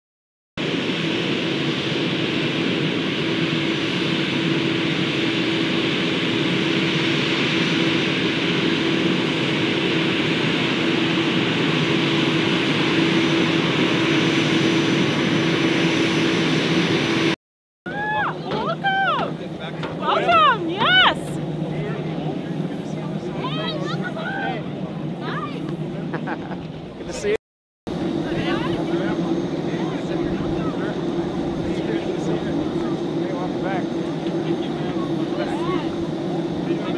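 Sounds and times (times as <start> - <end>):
jet engines running: 0.6 - 36.9.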